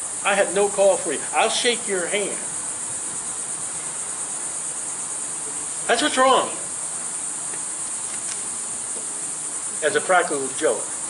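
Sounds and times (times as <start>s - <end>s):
high-pitched hiss: 0.0s - 11.0s
man talking: 0.2s - 2.5s, 5.9s - 6.7s, 9.8s - 10.9s.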